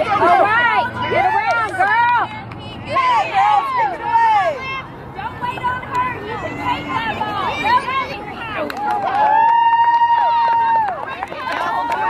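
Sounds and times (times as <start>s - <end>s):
spectator high woo: 9.1s - 11.0s.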